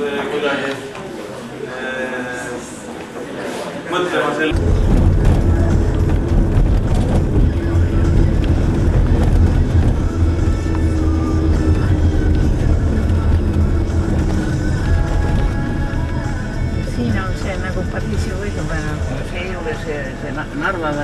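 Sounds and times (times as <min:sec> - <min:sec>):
car engine and road noise: 0:04.5 - 0:21.0.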